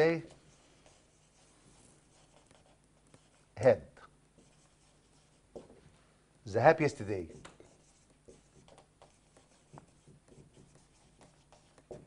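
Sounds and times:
man speaking: 0:00.0 - 0:00.4, 0:03.6 - 0:04.1, 0:06.4 - 0:07.4
marker writing on whiteboard: 0:00.0 - 0:03.7, 0:04.3 - 0:05.8, 0:07.0 - 0:12.0.

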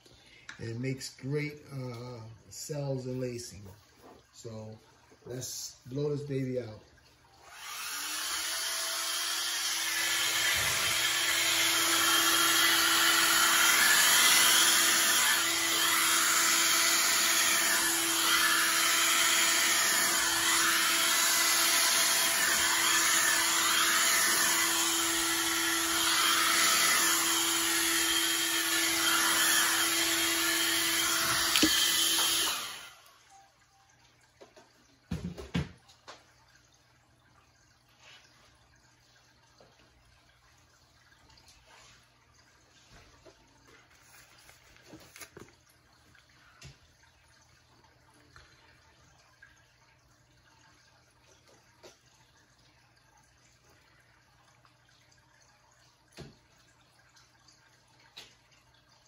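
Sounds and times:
hair dryer running: 0:07.4 - 0:33.1.

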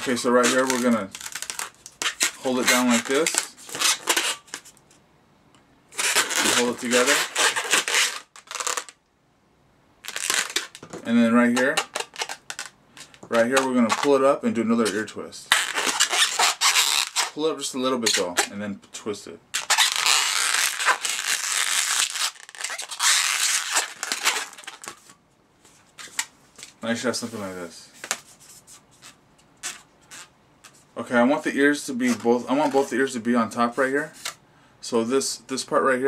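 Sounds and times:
balloon rubbing: 0:00.0 - 0:04.6, 0:05.9 - 0:08.9, 0:10.0 - 0:10.8, 0:11.4 - 0:14.1, 0:15.5 - 0:17.4, 0:19.6 - 0:25.0, 0:28.7 - 0:30.8.

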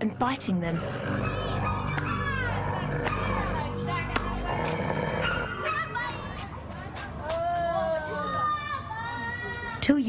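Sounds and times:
children calling out: 0:01.1 - 0:06.5, 0:07.2 - 0:09.8
children's high drawn-out cries: 0:07.3 - 0:09.8.

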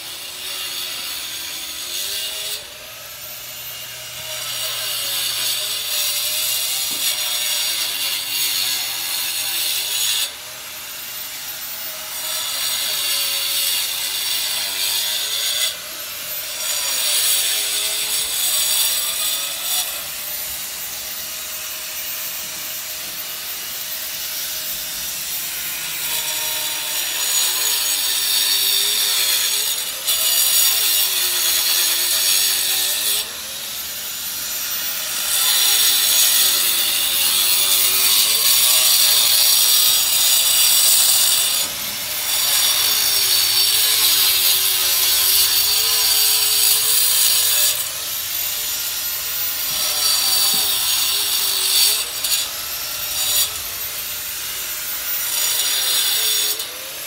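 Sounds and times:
power saw cutting: 0:00.0 - 0:57.0.

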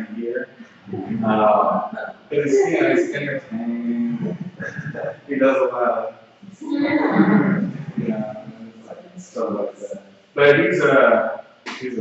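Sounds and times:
man laughing heartily: 0:02.5 - 0:03.1.

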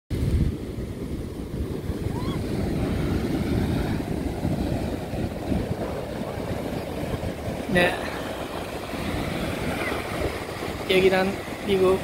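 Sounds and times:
surf breaking on beach: 0:00.1 - 0:12.0
wind buffeting microphone: 0:00.1 - 0:12.0.

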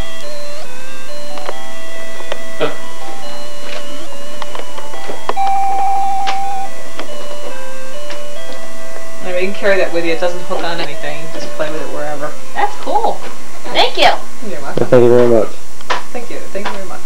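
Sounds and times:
electronic toy beeping tune: 0:00.0 - 0:12.2.

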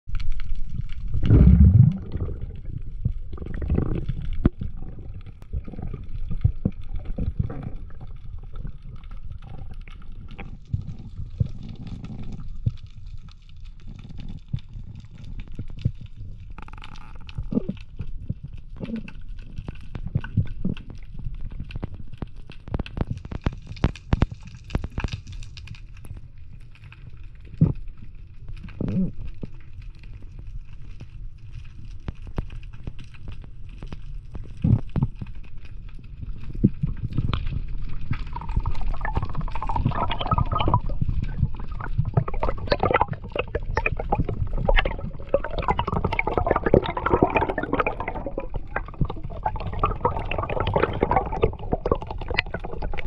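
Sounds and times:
underwater water rumble: 0:00.1 - 0:53.0
surges of water noise: 0:00.3 - 0:12.2, 0:37.6 - 0:53.0.

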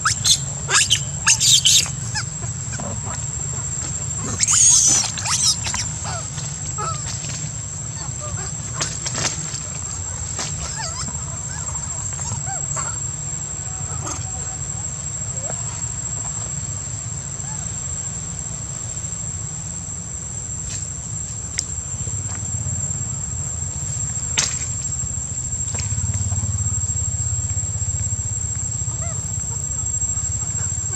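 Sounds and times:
monkeys giving squeaky calls: 0:00.0 - 0:03.2, 0:04.3 - 0:07.1, 0:10.6 - 0:13.0
high-pitched insect drone: 0:00.0 - 0:10.0, 0:10.6 - 0:30.9.

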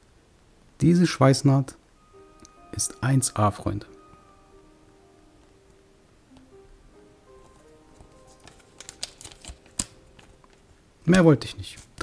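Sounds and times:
faint background music: 0:00.6 - 0:12.0
plastic bag crinkling: 0:07.5 - 0:10.7.

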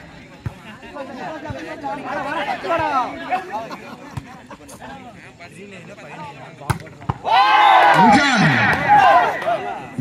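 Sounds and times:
loud shouting: 0:07.2 - 0:10.0.

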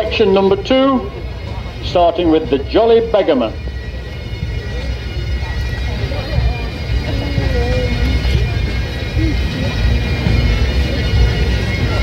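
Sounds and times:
bagpipe drone: 0:00.0 - 0:12.0
crowd chatter: 0:00.0 - 0:12.0.

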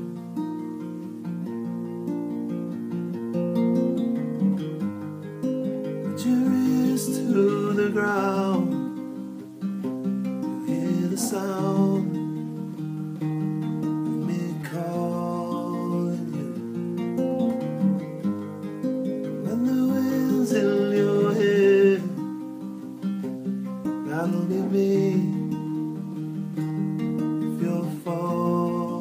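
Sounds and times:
solo acoustic guitar: 0:00.0 - 0:29.0.

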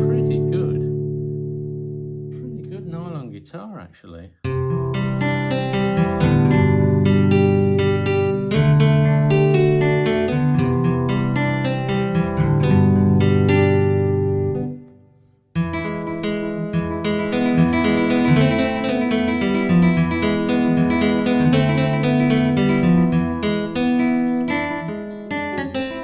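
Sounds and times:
synthesized nylon-string guitar: 0:00.0 - 0:03.3, 0:04.4 - 0:26.0.

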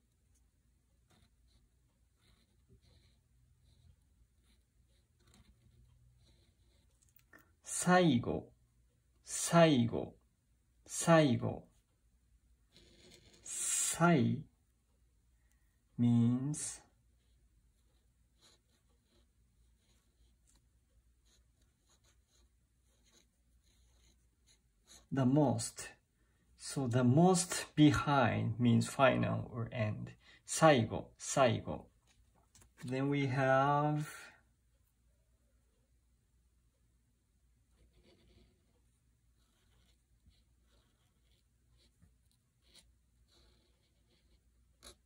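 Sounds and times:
felt-tip pen writing on paper: 0:01.0 - 0:07.1, 0:17.2 - 0:25.1, 0:37.7 - 0:45.0.

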